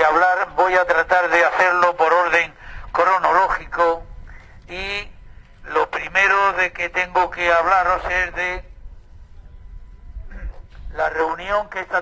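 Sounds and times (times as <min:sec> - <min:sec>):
man speaking: 0:00.0 - 0:04.1, 0:04.7 - 0:08.7, 0:10.4 - 0:12.0
low steady background rumble: 0:00.0 - 0:12.0.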